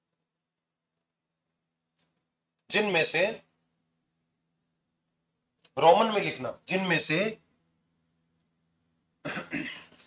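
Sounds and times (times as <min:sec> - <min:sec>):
man coughing: 0:09.2 - 0:10.0.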